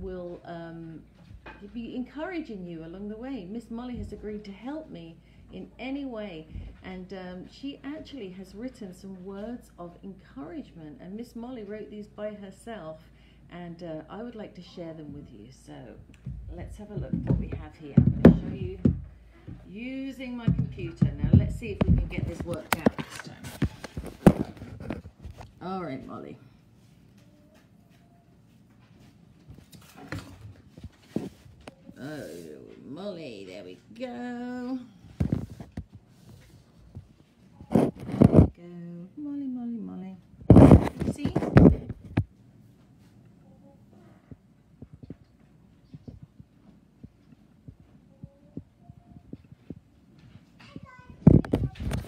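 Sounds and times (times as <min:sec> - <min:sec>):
girl's voice through laptop speakers: 0:14.6 - 0:19.0, 0:19.6 - 0:23.7, 0:40.6 - 0:41.9, 0:50.7 - 0:52.0
soft low thumps: 0:16.0 - 0:22.8
laptop speaker playing video: 0:37.7 - 0:38.5, 0:40.5 - 0:42.2.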